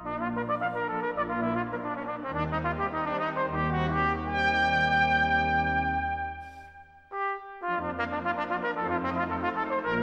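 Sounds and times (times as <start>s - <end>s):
brass band sustained chord: 0.0s - 10.0s.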